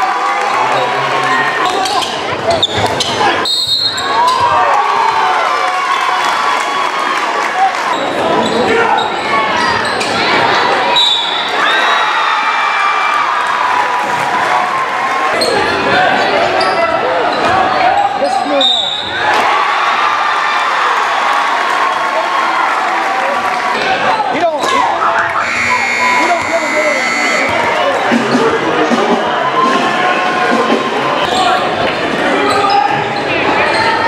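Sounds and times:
shoe squeaks: 0:01.6 - 0:04.4, 0:32.4 - 0:33.0
people clapping: 0:04.6 - 0:08.0, 0:20.4 - 0:24.2
crowd murmur: 0:13.5 - 0:34.0.

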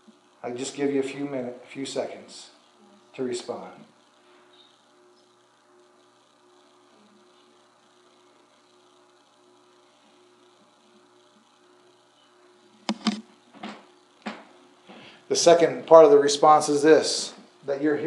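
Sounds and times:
faint buzzing hum: 0:00.0 - 0:18.0.

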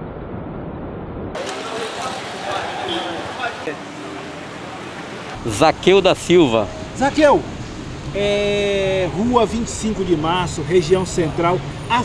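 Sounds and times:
street noise: 0:01.3 - 0:12.0
faint voices: 0:01.4 - 0:12.0.

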